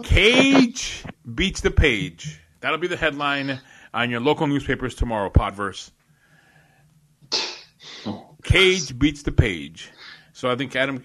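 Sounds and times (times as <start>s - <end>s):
person breathing sharply: 3.5s - 3.9s, 6.2s - 6.8s.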